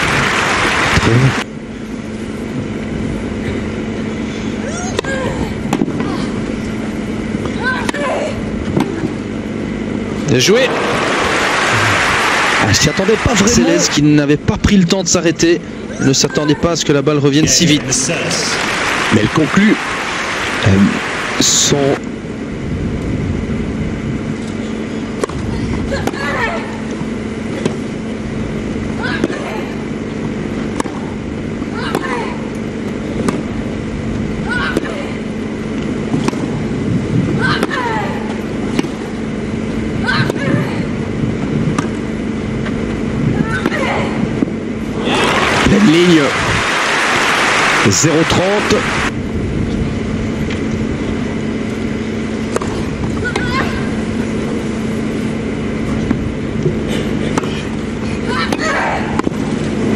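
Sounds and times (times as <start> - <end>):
crowd applauding: 0.0 - 1.4, 10.5 - 14.0, 17.7 - 21.8, 45.0 - 49.1
player grunting: 10.7 - 13.9, 45.0 - 45.8
racket hitting tennis ball: 30.7 - 31.1, 36.1 - 36.5, 57.3 - 57.6
umpire calling score: 45.0 - 49.1.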